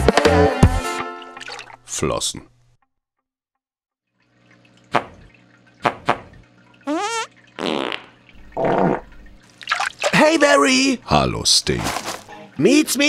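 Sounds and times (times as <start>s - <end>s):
cartoon bubble gurgling: 5.8s - 10.4s.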